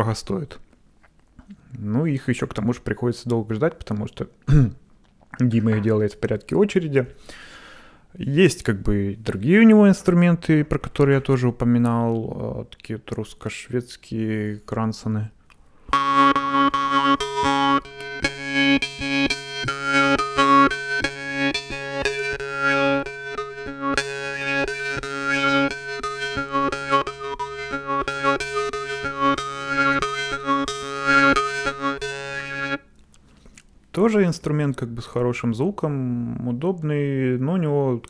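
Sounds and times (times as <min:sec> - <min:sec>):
jaw harp melody: 0:15.8 - 0:32.9.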